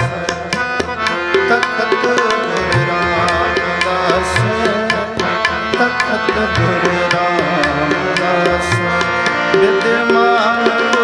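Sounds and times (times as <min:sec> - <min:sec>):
harmonium chords: 0:00.0 - 0:11.0
tabla strokes: 0:00.0 - 0:11.0
melody line bending in pitch: 0:02.6 - 0:07.6.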